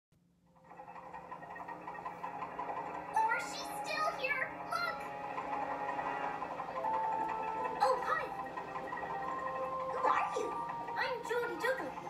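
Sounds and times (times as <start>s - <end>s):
cartoon soundtrack from television: 0.5s - 12.0s.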